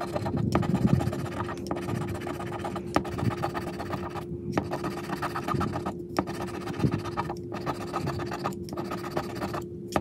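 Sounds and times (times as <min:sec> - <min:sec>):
plastic scraper scratching ticket: 0:00.0 - 0:10.0.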